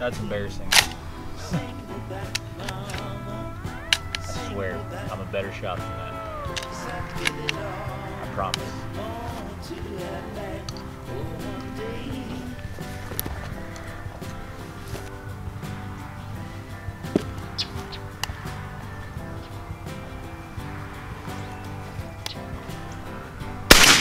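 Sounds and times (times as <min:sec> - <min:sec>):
background music: 0:00.0 - 0:24.0
loud shotgun shot: 0:23.7 - 0:24.0.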